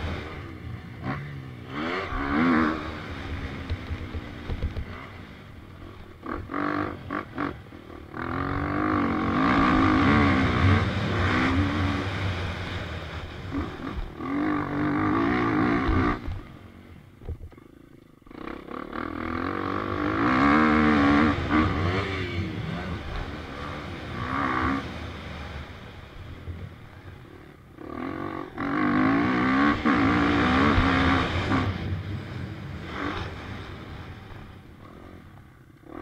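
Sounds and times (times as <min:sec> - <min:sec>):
motorcycle engine revving: 0:00.0 - 0:36.0.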